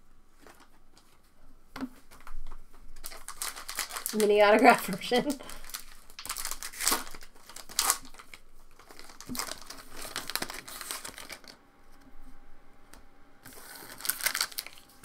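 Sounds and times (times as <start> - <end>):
foil wrapper crinkling: 2.0 - 11.6, 13.4 - 15.0
cards being handled: 5.6 - 11.6, 13.4 - 14.9.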